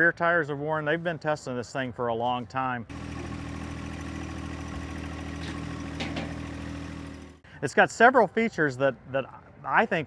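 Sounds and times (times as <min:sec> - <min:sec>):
tractor engine idling: 0:02.9 - 0:07.4.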